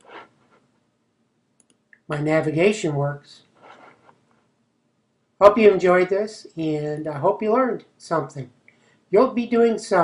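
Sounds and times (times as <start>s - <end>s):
computer mouse clicks: 1.6s - 1.8s.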